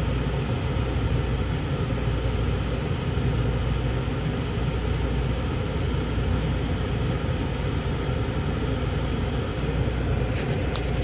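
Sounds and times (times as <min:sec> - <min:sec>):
diesel locomotives idling: 0:00.0 - 0:11.0.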